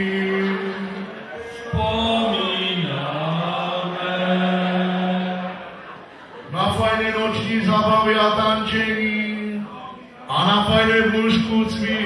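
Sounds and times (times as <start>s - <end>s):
man chanting: 6.6s - 12.0s.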